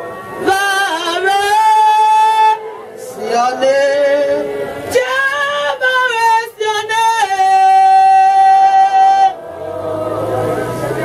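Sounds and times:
woman singing: 0.4 - 9.4.

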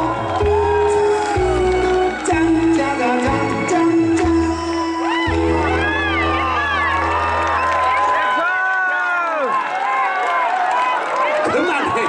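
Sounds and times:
crowd noise: 0.0 - 12.0
man singing into a microphone: 2.1 - 5.1.

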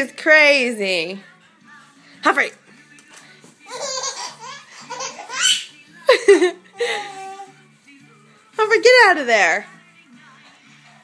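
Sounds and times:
baby giggling: 3.7 - 7.5
people laughing: 6.1 - 7.0.

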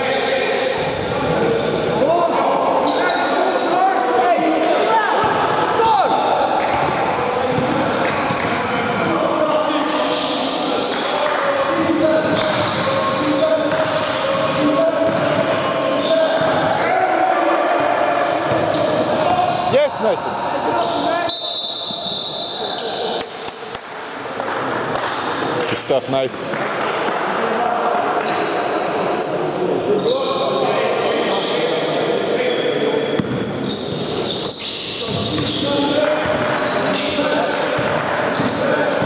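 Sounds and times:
players calling out: 0.2 - 23.6
basketball bouncing on wooden court: 6.7 - 8.6, 13.7 - 15.6, 33.2 - 34.1
shoes squeaking: 33.2 - 39.0.

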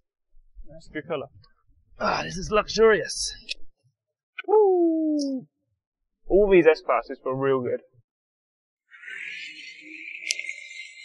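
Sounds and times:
man's drawn-out ooh: 4.4 - 5.5.

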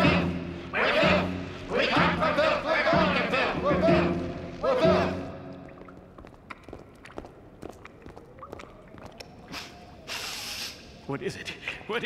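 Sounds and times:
chanting: 0.0 - 5.4
water drips: 5.2 - 12.0
short hiss: 9.5 - 10.9.

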